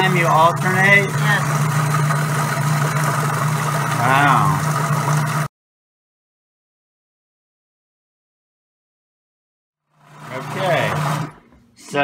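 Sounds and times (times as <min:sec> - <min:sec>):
person's pitch-bending vocal sound: 0:04.0 - 0:04.7.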